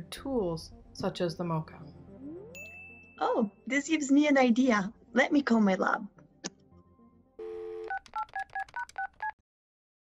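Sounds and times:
dial tone: 7.4s - 9.1s
touch-tone keypad beeps: 7.7s - 9.4s.

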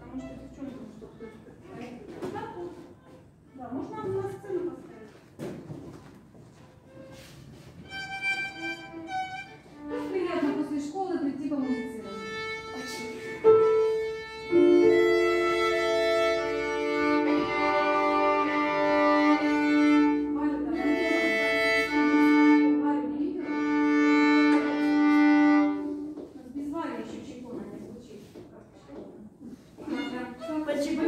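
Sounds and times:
string ensemble playing chords: 7.8s - 10.0s, 11.6s - 26.2s.

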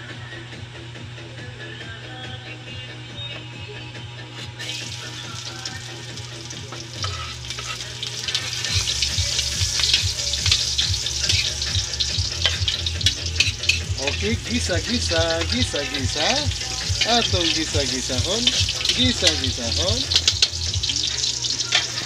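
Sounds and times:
garlic sizzling in hot oil: 4.6s - 22.0s
stirring scrapes against pan: 7.0s - 8.9s.

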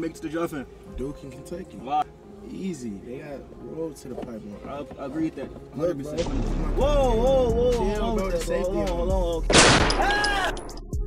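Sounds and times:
loud gunshot: 9.5s - 10.6s.

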